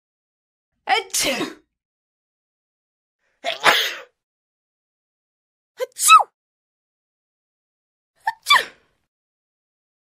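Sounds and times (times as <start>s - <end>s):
person sneezing: 3.5s - 4.2s.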